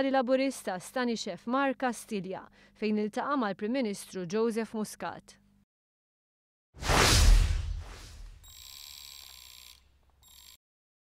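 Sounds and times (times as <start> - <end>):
whoosh: 6.8 - 8.4
high electronic ringing shimmer: 8.3 - 9.7.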